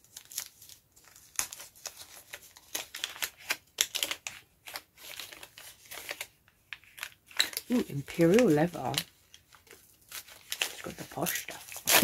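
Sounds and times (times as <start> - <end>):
wrapping paper crinkling and tearing: 0.0 - 12.0.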